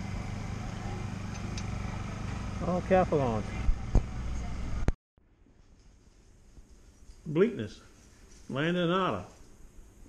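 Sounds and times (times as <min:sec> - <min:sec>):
low engine hum: 0:00.0 - 0:05.0.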